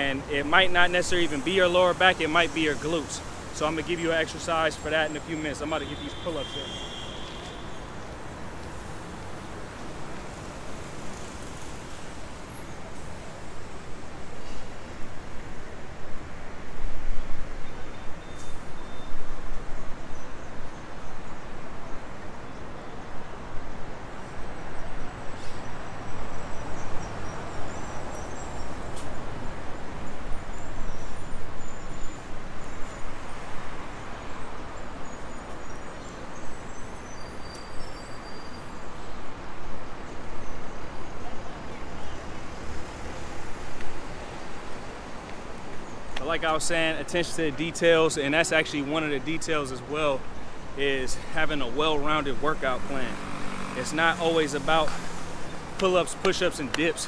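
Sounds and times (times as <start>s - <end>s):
passing cars rushing: 38.6s - 57.0s.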